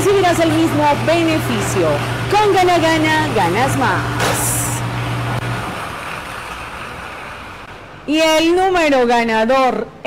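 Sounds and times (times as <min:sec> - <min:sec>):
lottery ball machine air rush: 0:00.0 - 0:08.0.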